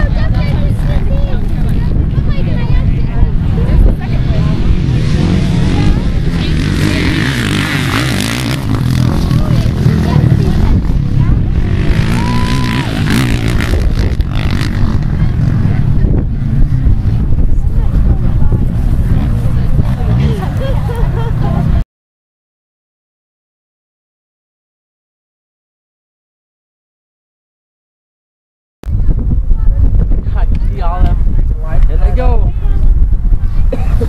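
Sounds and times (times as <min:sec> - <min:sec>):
dirt bike engines: 0:00.0 - 0:21.8, 0:28.9 - 0:34.0
people's voices: 0:00.0 - 0:21.8, 0:28.9 - 0:34.0
wind buffeting microphone: 0:00.0 - 0:21.8, 0:28.8 - 0:34.0.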